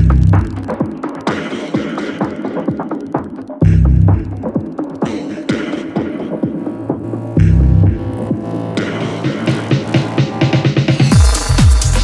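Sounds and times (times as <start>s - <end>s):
low bass line: 0.0s - 0.7s, 3.6s - 4.4s, 7.0s - 10.2s
hi-hat ticks: 0.0s - 6.9s.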